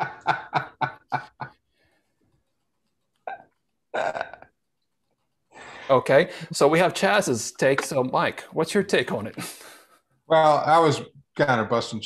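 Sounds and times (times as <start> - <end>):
man laughing heartily: 0.0 - 1.5.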